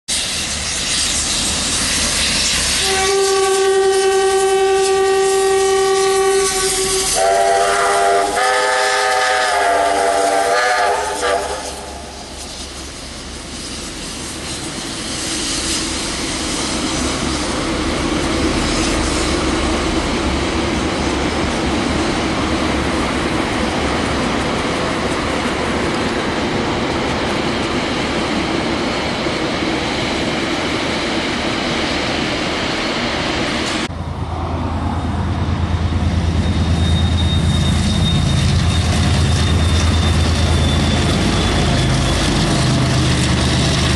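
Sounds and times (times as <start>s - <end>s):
train rumbling past on rails: 0.1s - 43.9s
train horn chord: 2.8s - 12.1s
train horn blast: 2.8s - 12.2s.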